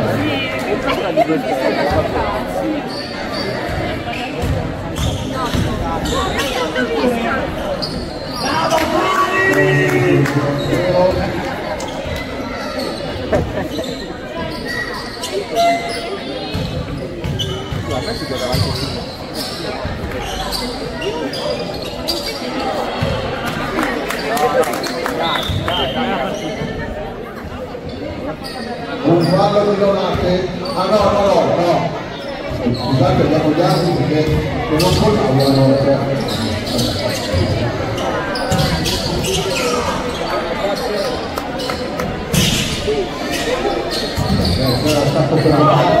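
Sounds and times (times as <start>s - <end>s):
players' voices: 0.0s - 46.0s.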